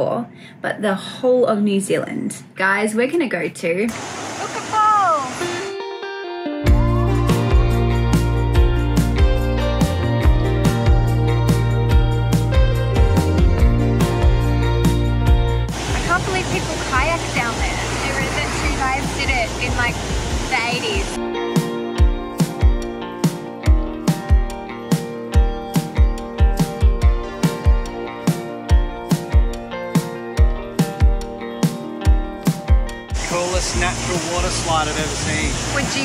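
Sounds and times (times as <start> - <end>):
guitar background music: 5.4 - 36.0
white water rushing: 15.7 - 21.2, 33.2 - 36.0.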